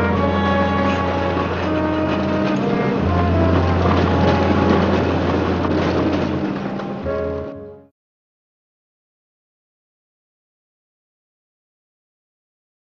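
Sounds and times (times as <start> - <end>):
cable car clattering on track: 0.0 - 7.8
orchestral background music: 0.0 - 7.9.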